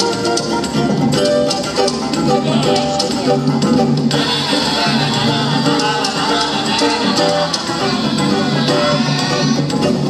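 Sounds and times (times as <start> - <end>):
double bass: 0.0 - 10.0
hand percussion: 0.0 - 10.0
plucked strings: 0.0 - 10.0.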